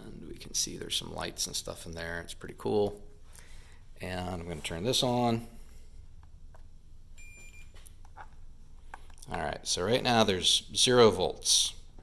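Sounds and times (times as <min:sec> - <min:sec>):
faint low hum: 0:00.0 - 0:12.0
multimeter short high beep: 0:07.2 - 0:07.8.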